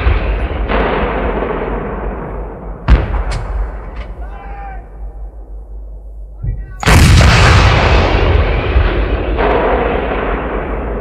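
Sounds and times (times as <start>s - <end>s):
loud boom with rumble: 6.4s - 11.0s.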